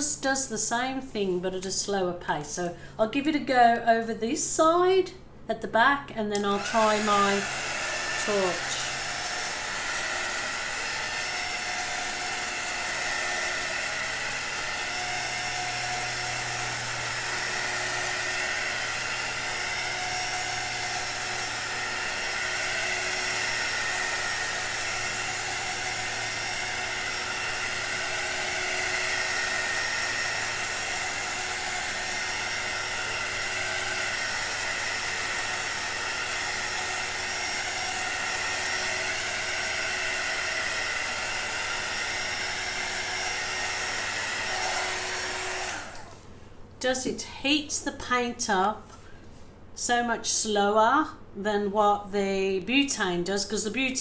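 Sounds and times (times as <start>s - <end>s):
heat gun fan whir with whine: 6.2s - 54.0s.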